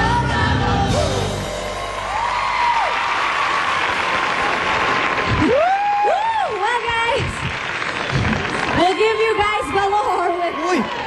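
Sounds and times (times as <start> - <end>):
music: 0.0 - 2.8
studio audience applauding: 2.0 - 11.0.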